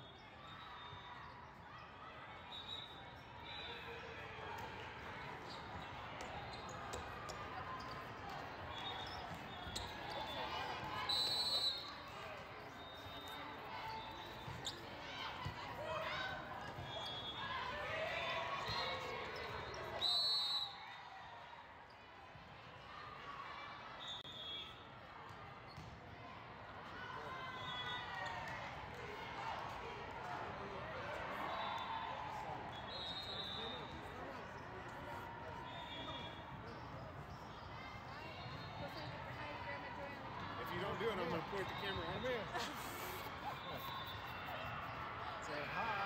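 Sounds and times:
faint short whistles: 2.4 - 3.9, 8.7 - 14.9, 19.4 - 21.1, 24.0 - 24.8, 31.4 - 34.2, 35.6 - 37.5, 41.5 - 44.7
loud referee whistle blasts: 11.0 - 12.0, 20.0 - 20.9, 24.0 - 24.8, 32.7 - 34.1
voices echoing in large hall: 27.2 - 46.0.

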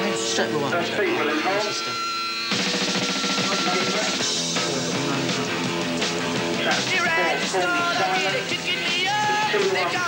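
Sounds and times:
rock band playing: 1.4 - 10.0.

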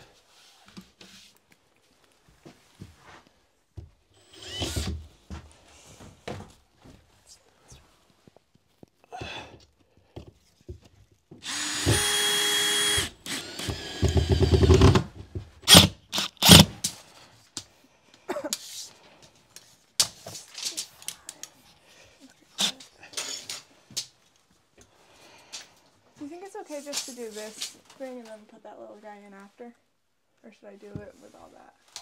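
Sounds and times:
power drill driving screws: 4.2 - 5.1, 11.4 - 16.8, 22.6 - 22.8.

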